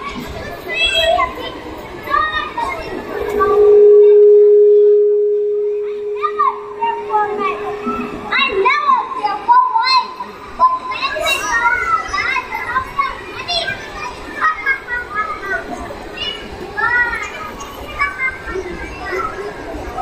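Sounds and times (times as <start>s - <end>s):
children chattering and calling out: 0.0s - 20.0s
steady tone: 3.1s - 9.4s.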